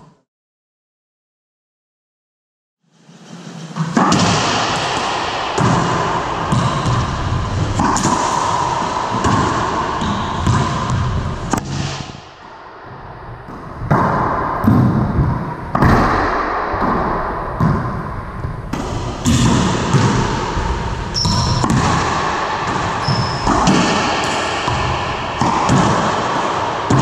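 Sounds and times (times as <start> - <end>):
ball hitting walls: 3.8 - 12.3, 13.5 - 27.0
racquet smacking ball: 3.9 - 12.2, 13.5 - 27.0.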